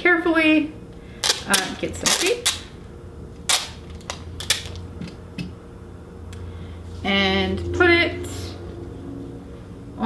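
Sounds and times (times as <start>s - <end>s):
sticky tape ripping: 1.2s - 2.7s, 3.4s - 4.8s
tape dispenser clicks: 1.2s - 2.7s, 3.4s - 4.8s.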